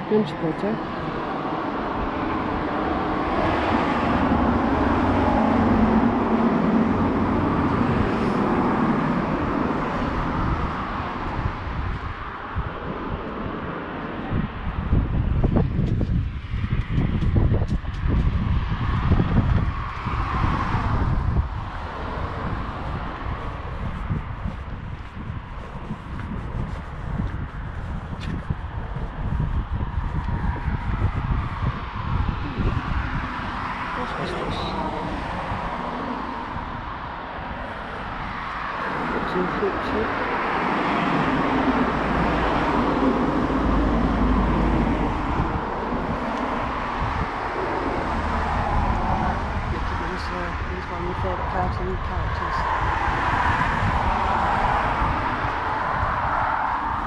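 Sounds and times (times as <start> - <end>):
road traffic passing: 0.0 - 57.0
wind gusting on microphone: 0.0 - 57.0.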